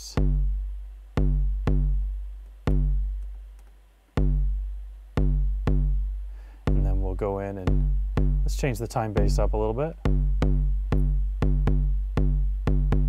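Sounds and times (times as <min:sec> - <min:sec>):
electronic kick drum booms: 0:00.0 - 0:03.5, 0:04.2 - 0:13.0.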